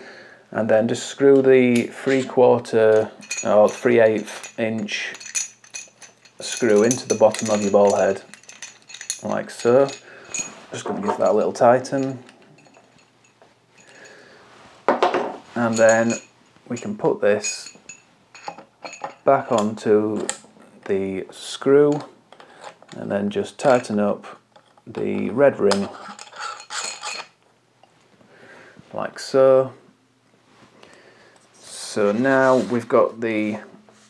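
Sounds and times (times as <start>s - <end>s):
metal parts scraping and clinking: 1.7s - 14.2s, 15.5s - 20.4s, 21.8s - 25.0s, 25.7s - 27.4s.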